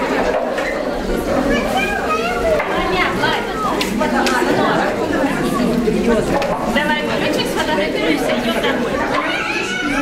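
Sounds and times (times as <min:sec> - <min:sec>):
women and children chattering: 0:00.0 - 0:10.0.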